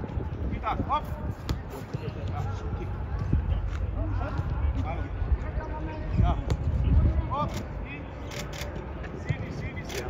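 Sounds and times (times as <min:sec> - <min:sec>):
footballs being kicked: 0:00.0 - 0:07.2.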